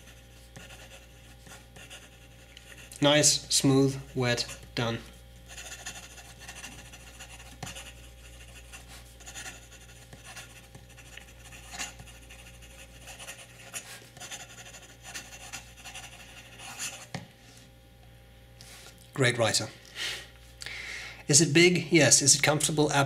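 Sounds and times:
pen nib scratching on paper: 0:00.0 - 0:03.0, 0:04.0 - 0:04.8, 0:05.5 - 0:17.1.

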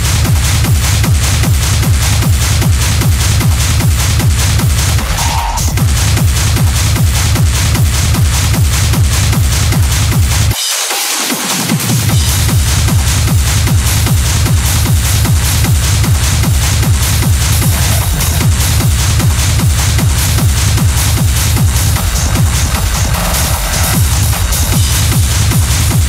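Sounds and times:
hard techno music: 0:00.0 - 0:26.0.

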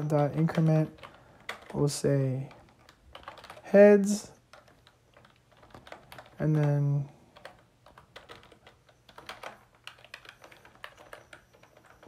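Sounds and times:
typing on computer keyboard: 0:00.0 - 0:12.0.

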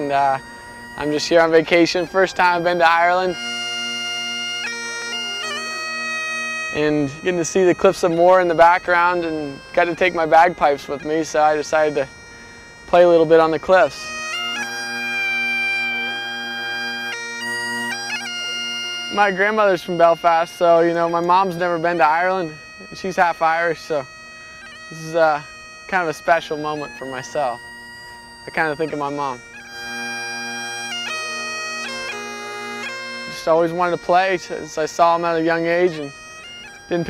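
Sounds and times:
bagpipes playing: 0:00.0 - 0:37.0.

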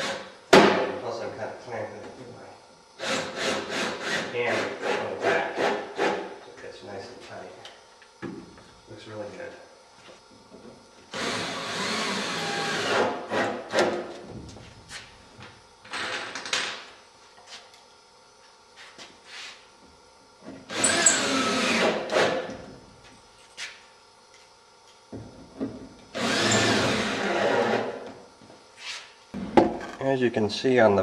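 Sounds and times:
power drill driving screws: 0:11.1 - 0:13.6, 0:20.7 - 0:22.4, 0:26.1 - 0:28.0.

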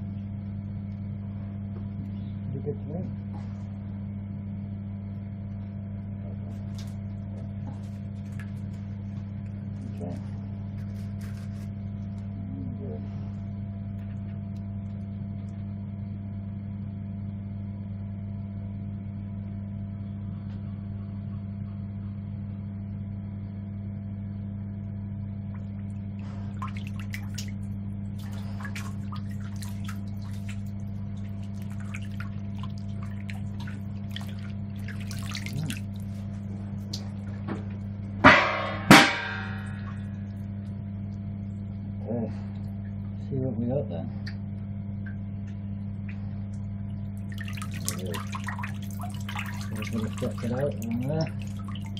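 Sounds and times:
steady low hum: 0:00.0 - 0:51.9
hands splashing water: 0:25.6 - 0:37.3, 0:46.0 - 0:51.9
sharp ringing knocks: 0:38.2 - 0:40.0.

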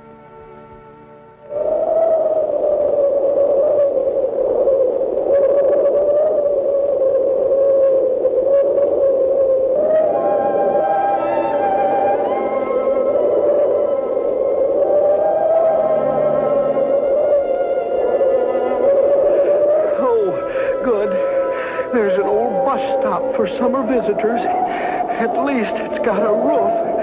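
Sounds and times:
wind howl over hiss: 0:01.4 - 0:27.0.

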